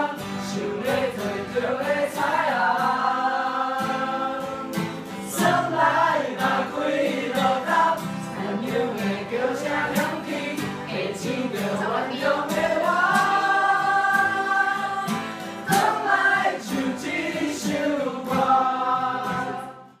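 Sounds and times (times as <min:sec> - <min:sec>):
pop song with voices singing: 0:00.0 - 0:20.0.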